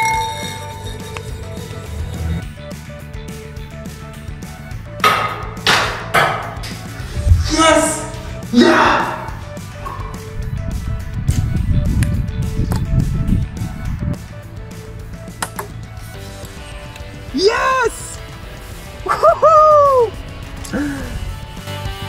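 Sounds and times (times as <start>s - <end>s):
background music: 0.0s - 22.0s
man cheering shout: 7.3s - 9.4s, 17.3s - 18.2s, 19.1s - 20.2s.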